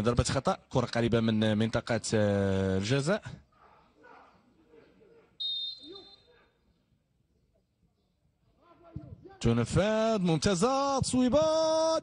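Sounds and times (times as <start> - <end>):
referee's whistle blast: 5.4 - 6.4.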